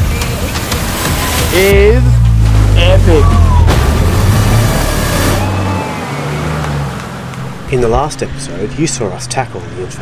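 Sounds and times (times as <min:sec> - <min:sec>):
water splashing from wheels: 0:00.0 - 0:09.5.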